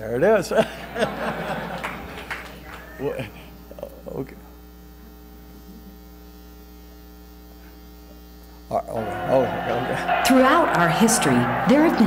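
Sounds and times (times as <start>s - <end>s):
electrical mains hum: 0.0s - 12.0s
man laughing: 0.5s - 2.2s, 2.9s - 3.5s, 9.0s - 12.0s.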